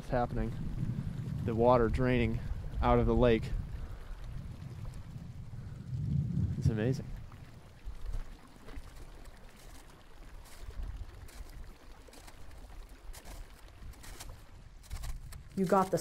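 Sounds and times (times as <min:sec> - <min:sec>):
low rumbling: 0:00.0 - 0:08.3
ice cracking and popping: 0:07.2 - 0:16.0.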